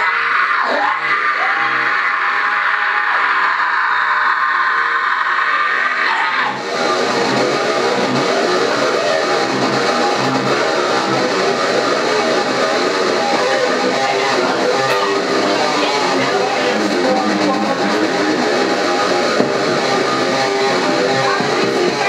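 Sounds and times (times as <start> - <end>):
electric guitar heavy metal riff: 0.0 - 22.0.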